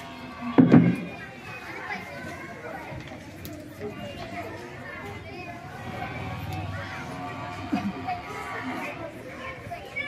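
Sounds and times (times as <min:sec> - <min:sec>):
background chatter with children: 0:00.0 - 0:10.0.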